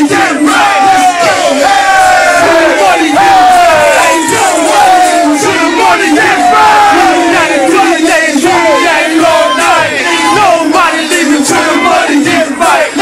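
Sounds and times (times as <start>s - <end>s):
men shouting and yelling: 0.0s - 13.0s
shouts falling in pitch: 0.3s - 7.7s.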